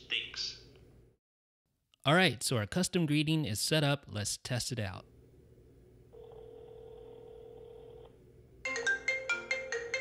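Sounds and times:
phone ringback tone: 6.1 - 9.0.

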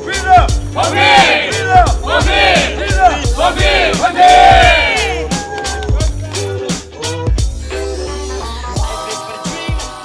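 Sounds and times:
music with steady beat: 0.0 - 10.0
group of people cheering: 0.8 - 6.1.

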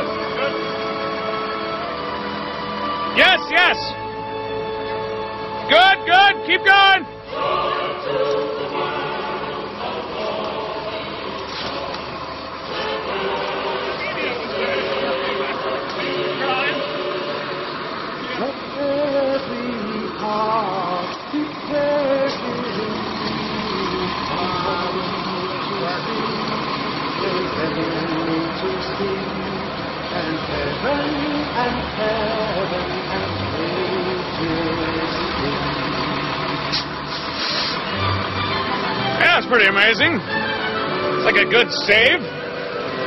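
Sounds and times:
held music-like notes: 0.0 - 37.1, 37.7 - 43.0
large vehicle engines running: 0.0 - 43.0
people's voices: 3.1 - 4.0, 5.6 - 37.8, 39.2 - 40.4, 41.0 - 43.0.

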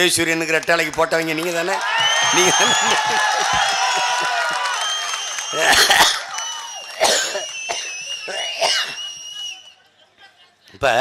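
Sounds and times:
crowd cheering: 0.1 - 9.9
high steady whistling tones: 4.7 - 5.8, 6.4 - 9.8.

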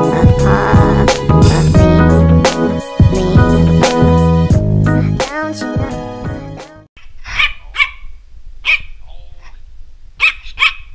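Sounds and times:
background music: 0.0 - 6.9
small dog barking: 7.3 - 9.6, 10.2 - 10.9.

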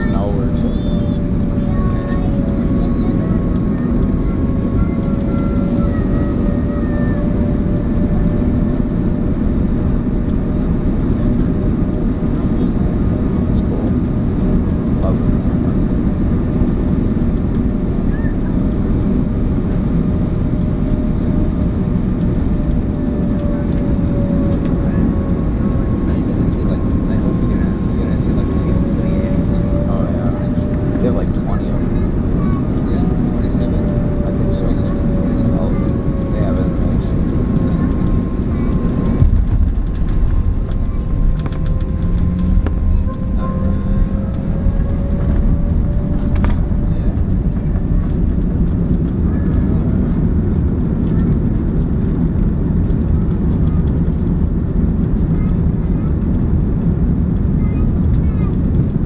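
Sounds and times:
aircraft cabin air rush: 0.0 - 59.0
faint engine hum: 0.0 - 59.0.

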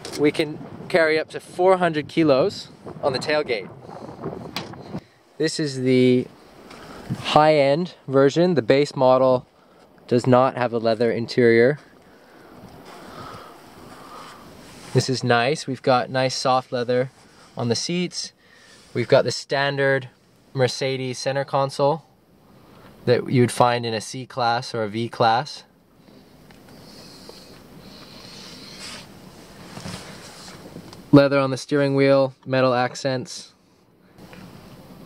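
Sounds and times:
faint wind on microphone: 0.0 - 8.0, 11.8 - 16.2, 26.2 - 31.2.

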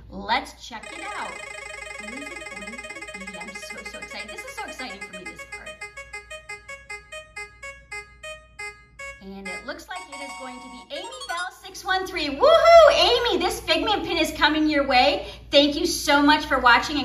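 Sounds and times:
spinning wheel ticking: 0.8 - 6.9.

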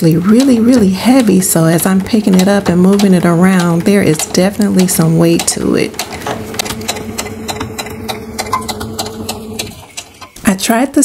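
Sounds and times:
electric sewing machine stitching: 0.0 - 10.6.

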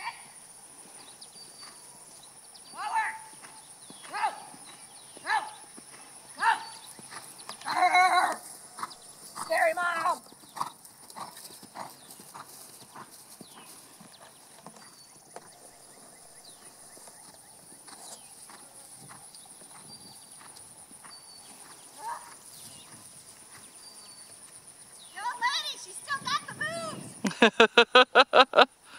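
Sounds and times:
horse hoofbeats on grass: 3.1 - 26.9.

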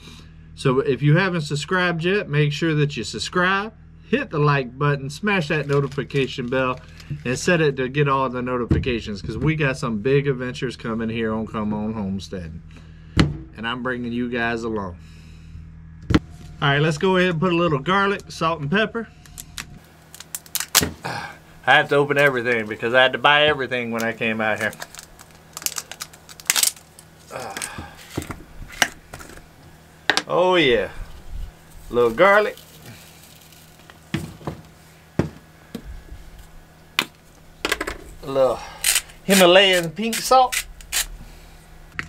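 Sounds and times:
plastic cap clicking and crackling: 19.3 - 20.9, 24.0 - 27.7.

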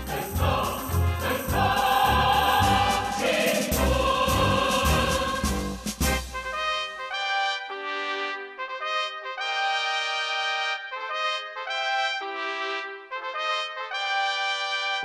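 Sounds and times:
solo brass melody: 0.0 - 2.0, 5.3 - 15.0
fuller chorus: 0.0 - 6.7.

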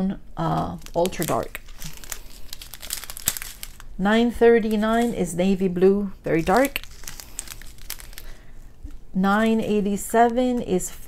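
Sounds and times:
plastic bag crinkling: 0.4 - 10.4.

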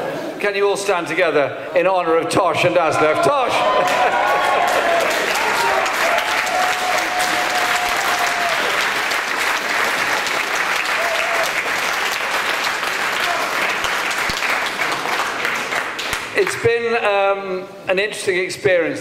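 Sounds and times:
audience applauding: 3.4 - 16.6.

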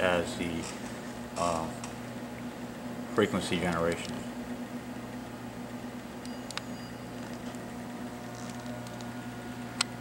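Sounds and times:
electronic equipment hum: 0.0 - 10.0.

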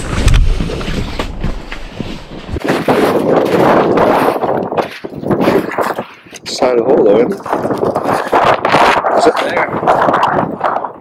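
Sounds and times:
deep rumble: 0.0 - 5.8
wind buffeting microphone: 0.0 - 11.0.

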